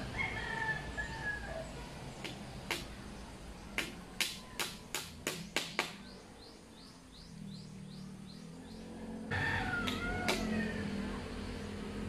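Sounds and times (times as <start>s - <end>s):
rooster crowing: 0.0s - 1.7s, 8.9s - 11.6s
hammer knocking on bamboo: 2.2s - 2.9s, 3.8s - 6.0s, 9.8s - 10.5s.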